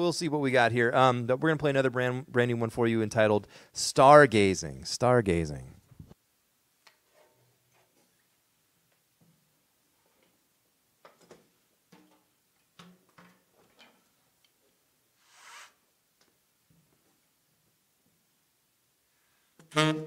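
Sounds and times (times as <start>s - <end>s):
short soft hiss: 15.1s - 15.9s.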